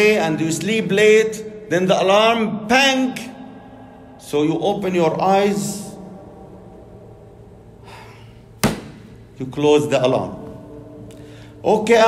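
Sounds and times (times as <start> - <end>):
short breath: 7.8 - 8.5, 11.1 - 11.6
sharp knock: 8.6 - 9.1.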